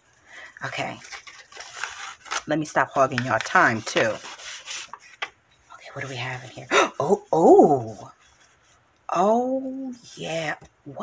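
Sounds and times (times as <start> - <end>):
paper rustling and rubbing: 0.7 - 6.7.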